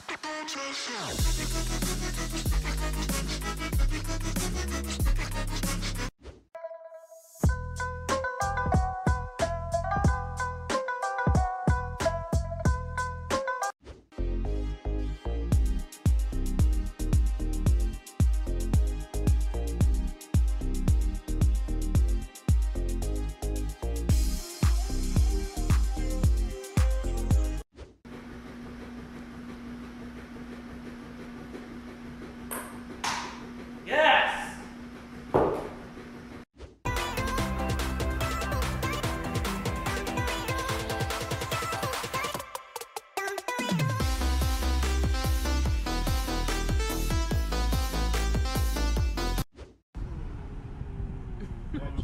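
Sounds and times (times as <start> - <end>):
person exclaiming: 33.9 - 34.6
person yelling excitedly: 33.9 - 34.6
vehicle road and engine rumble: 50.0 - 52.0.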